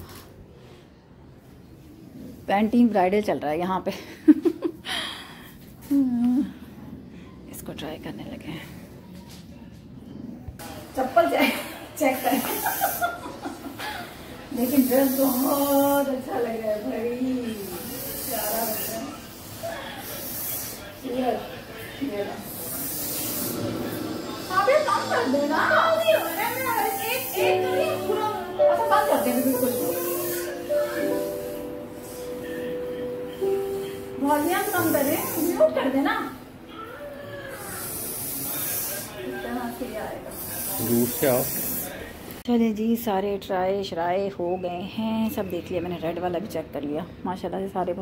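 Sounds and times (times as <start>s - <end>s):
faint voices talking: 13.8s - 48.0s
high hiss: 22.5s - 36.0s.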